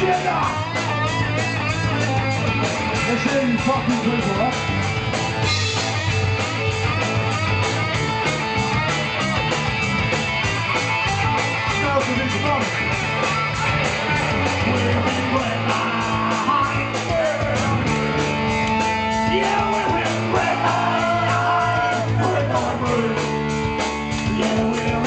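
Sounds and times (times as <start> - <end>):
rock band playing loud: 0.0 - 25.0.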